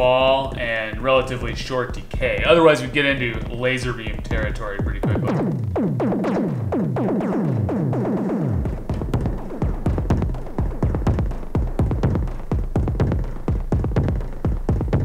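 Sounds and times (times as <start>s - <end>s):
deep steady bass: 0.0s - 15.0s
synthesized electronic drum pattern: 0.0s - 15.0s.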